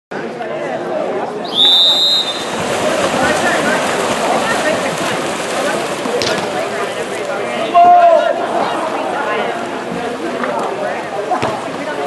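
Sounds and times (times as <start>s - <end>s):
spectators chattering and shouting: 0.1s - 12.0s
referee's whistle blast: 1.5s - 2.5s.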